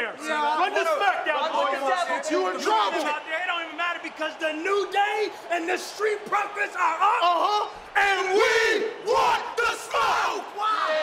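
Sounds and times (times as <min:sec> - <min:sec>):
men yelling together: 0:06.0 - 0:11.0.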